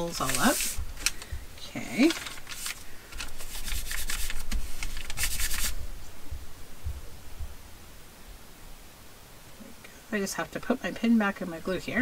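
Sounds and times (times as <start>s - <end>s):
hands rubbing paper on table: 0.2s - 0.8s, 2.1s - 5.8s.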